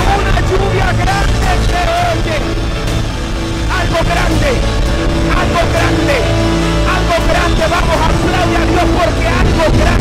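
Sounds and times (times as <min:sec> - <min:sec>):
drums: 0:00.0 - 0:10.0
live worship band: 0:00.0 - 0:10.0
guitar playing: 0:02.0 - 0:10.0.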